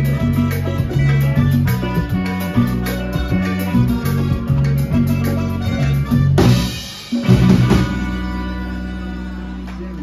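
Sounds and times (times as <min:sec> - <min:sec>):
drum kit: 0:00.0 - 0:10.0
electric bass line: 0:00.0 - 0:10.0
keyboard: 0:00.0 - 0:10.0.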